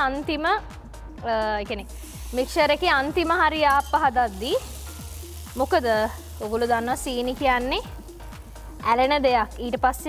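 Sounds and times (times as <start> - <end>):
background music with singing: 0.0 - 10.0
batter sizzling in hot pan: 1.7 - 10.0.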